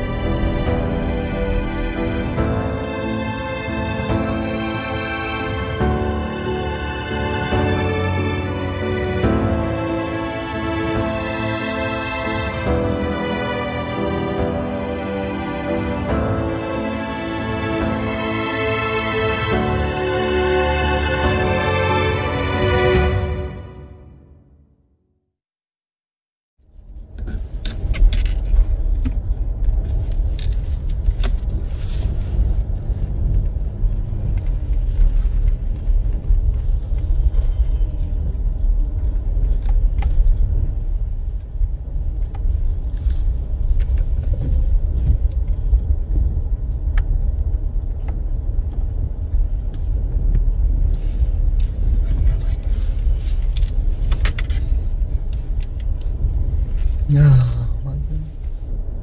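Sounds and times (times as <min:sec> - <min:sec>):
tyres and engine rumble: 0:00.0 - 0:24.2, 0:26.6 - 0:59.0.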